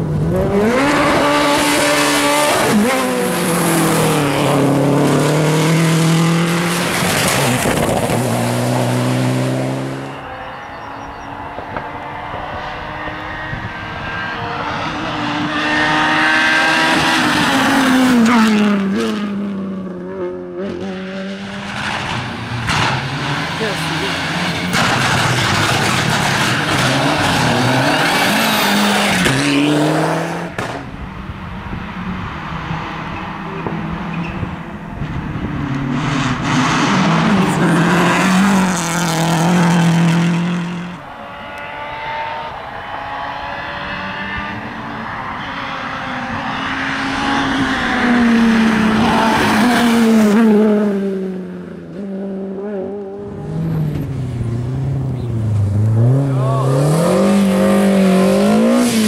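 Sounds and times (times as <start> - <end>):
rally cars racing past: 0.0 - 59.0.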